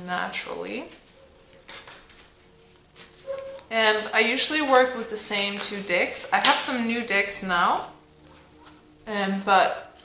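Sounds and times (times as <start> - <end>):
cards being shuffled: 0.9 - 6.6.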